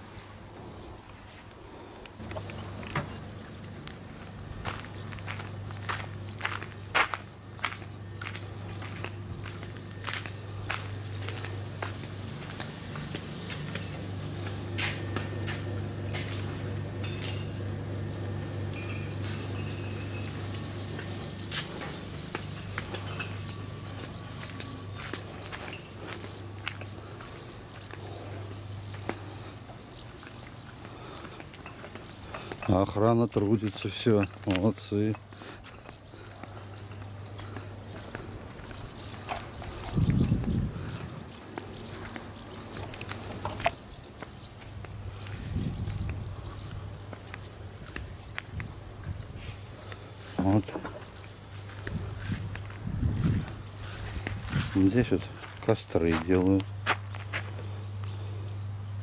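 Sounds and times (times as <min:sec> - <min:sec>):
steady low hum: 0:00.0 - 0:59.0
footsteps and scuffs: 0:02.2 - 0:17.5, 0:20.2 - 0:58.2.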